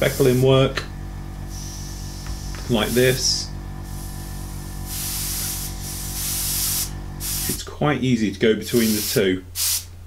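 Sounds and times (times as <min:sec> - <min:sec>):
airbrush spraying paint: 0:00.0 - 0:00.5, 0:01.5 - 0:07.6, 0:08.6 - 0:09.9.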